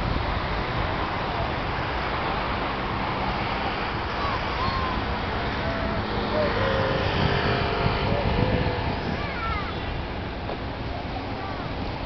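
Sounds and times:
ferry engines rumbling: 0:00.0 - 0:12.0
distant voices: 0:00.3 - 0:12.0.

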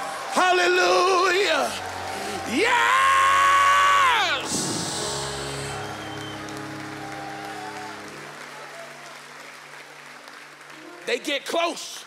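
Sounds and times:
audience applauding: 0:00.0 - 0:12.0
keyboard sustained chords: 0:00.5 - 0:11.5.

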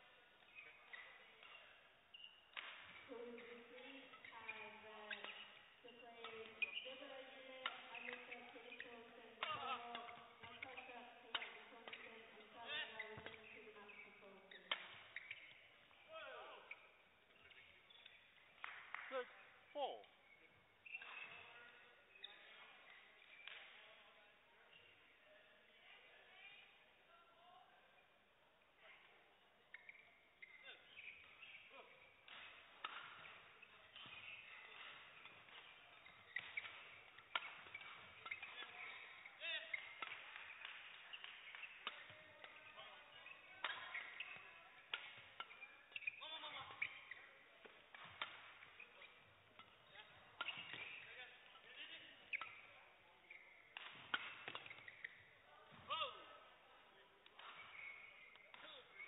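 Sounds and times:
racquets hitting shuttlecock: 0:00.0 - 0:24.0, 0:29.7 - 0:59.0
shoes squeaking on court floor: 0:00.0 - 0:26.9, 0:28.0 - 0:59.0.

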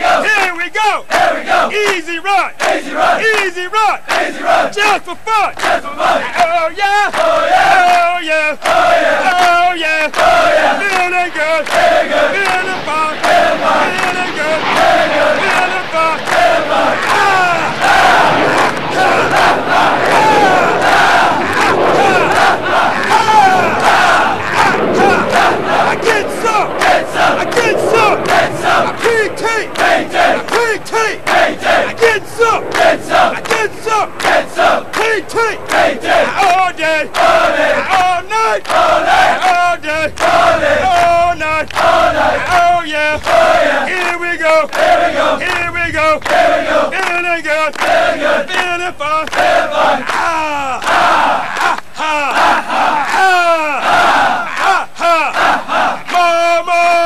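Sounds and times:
fast regular beat: 0:00.0 - 0:49.8
group chanting and shouting: 0:00.0 - 0:57.0.

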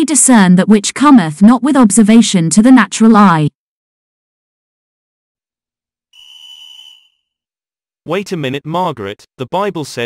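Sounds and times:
whistle blast: 0:06.2 - 0:07.4.

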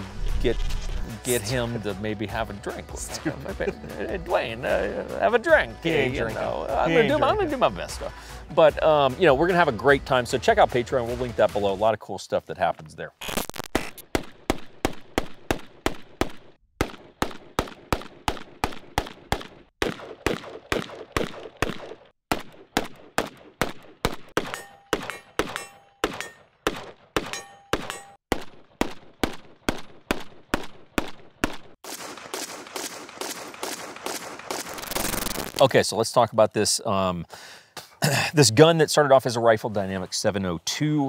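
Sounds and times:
dense hissing sound: 0:00.0 - 0:01.5
rifle shots: 0:16.8 - 0:35.5.

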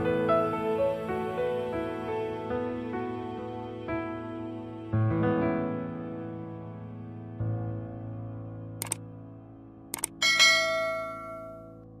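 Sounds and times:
mouse clicks: 0:08.8 - 0:09.0, 0:09.9 - 0:10.2
notification bell chime: 0:10.2 - 0:11.8.

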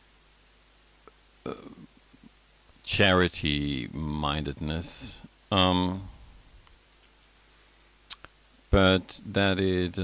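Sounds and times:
man burping: 0:01.4 - 0:01.9.

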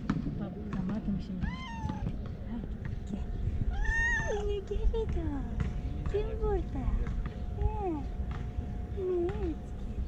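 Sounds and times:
cat meowing: 0:01.4 - 0:02.1.

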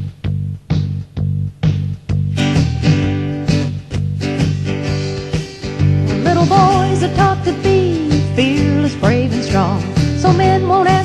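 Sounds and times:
instrumental music: 0:00.0 - 0:11.0
guitar strummed: 0:01.6 - 0:11.0.

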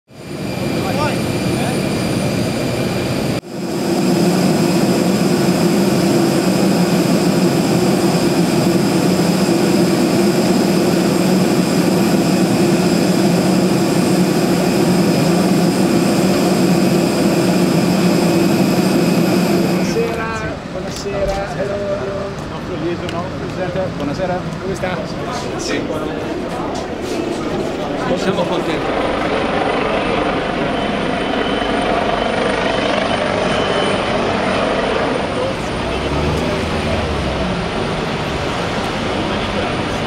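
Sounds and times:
jet turbine drone and whine: 0:00.1 - 0:40.0.

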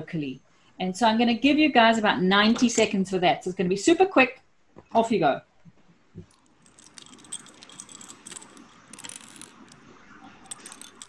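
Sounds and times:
plastic bricks clattering and clicking: 0:06.3 - 0:09.8, 0:10.5 - 0:11.0.

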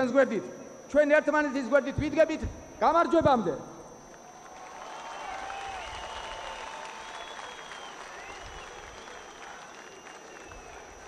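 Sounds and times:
speech: 0:00.0 - 0:03.7
crowd applauding: 0:04.2 - 0:11.0.

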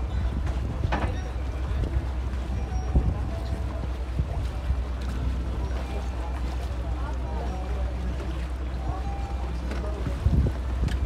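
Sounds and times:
wind buffeting microphone: 0:00.0 - 0:06.0, 0:08.6 - 0:11.0
boat motor rumbling: 0:00.0 - 0:11.0.

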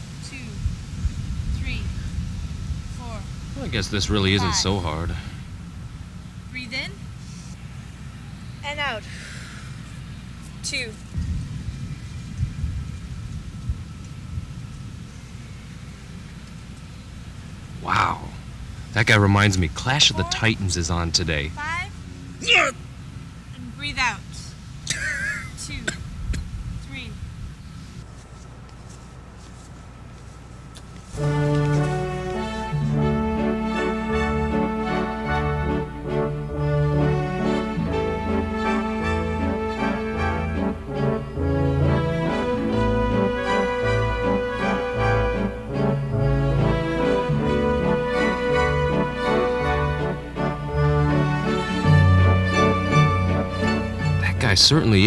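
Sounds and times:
wind buffeting microphone: 0:00.0 - 0:06.5, 0:11.0 - 0:16.4, 0:25.6 - 0:28.0
sustained chords: 0:31.2 - 0:55.0.

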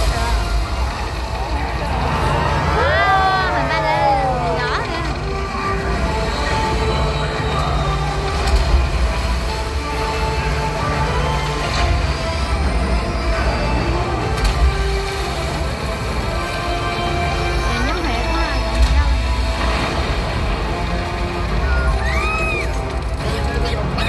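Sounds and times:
deep bass rumble: 0:00.0 - 0:24.0.

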